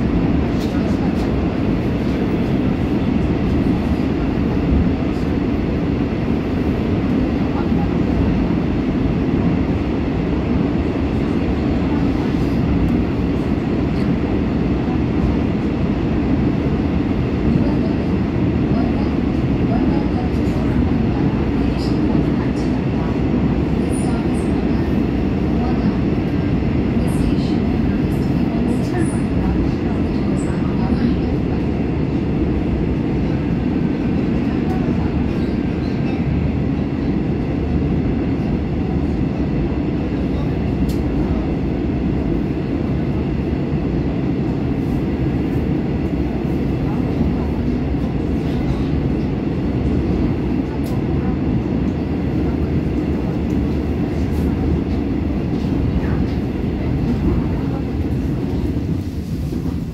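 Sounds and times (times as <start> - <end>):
subway car wheels rumbling on rail: 0.0 - 59.9.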